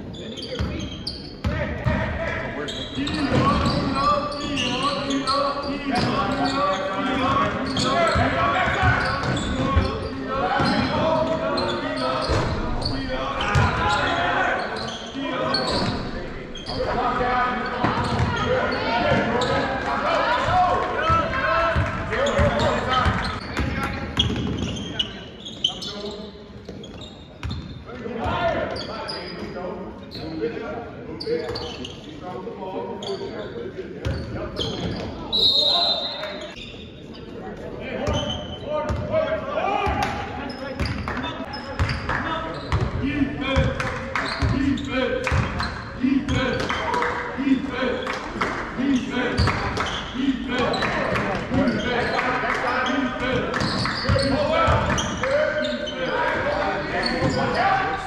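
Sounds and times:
people shouting and chatting: 0.0 - 58.0.

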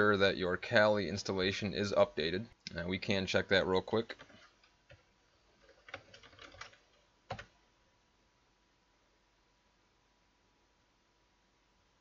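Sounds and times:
computer keyboard typing: 4.0 - 7.6.

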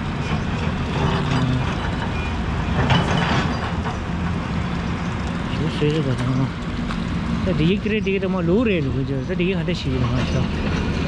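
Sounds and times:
excavator engine: 0.0 - 11.0.

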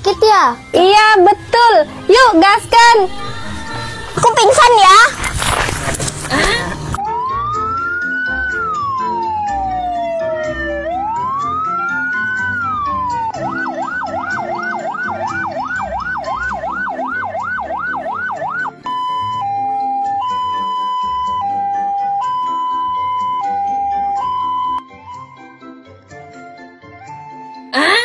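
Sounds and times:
background music: 0.0 - 28.0
emergency siren: 7.0 - 25.5.

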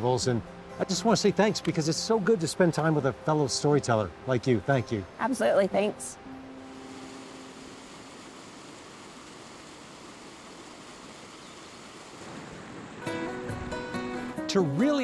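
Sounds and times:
strummed acoustic guitar music: 13.0 - 15.0.

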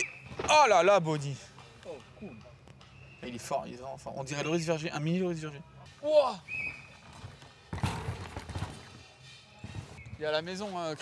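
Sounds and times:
bike rattling over dirt: 6.8 - 10.0
bike landing impact: 7.2 - 9.0.

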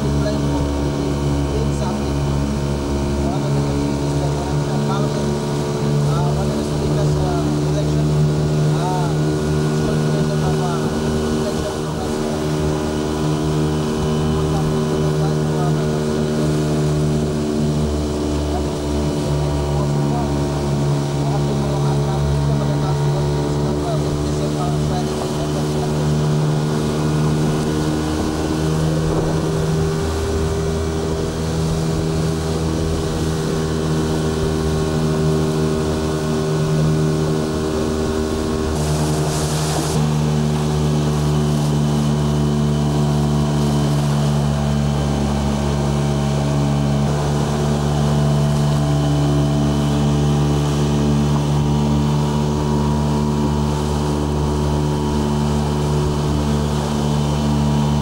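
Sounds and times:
outboard motor running: 0.0 - 58.0
rushing water: 0.0 - 58.0
wind: 0.0 - 58.0.

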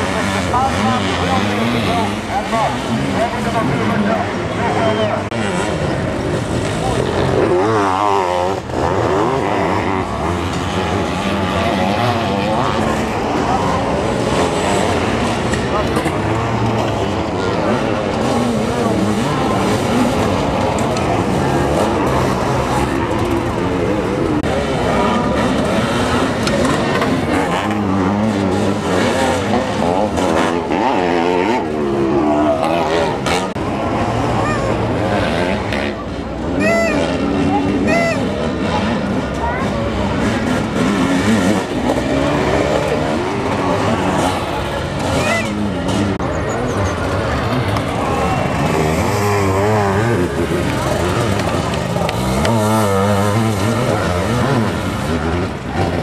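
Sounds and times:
motorcycle engines revving: 0.0 - 56.0.

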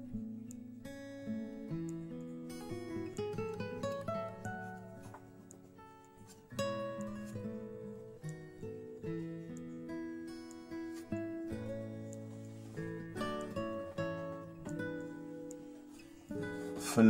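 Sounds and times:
acoustic guitar melody: 0.0 - 17.0.

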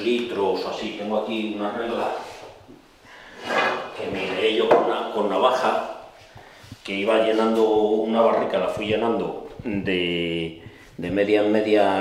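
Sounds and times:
person speaking: 3.5 - 12.0.

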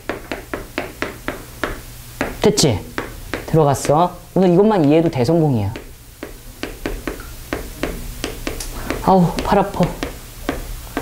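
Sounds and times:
chalk tapping on chalkboard: 0.0 - 11.0.

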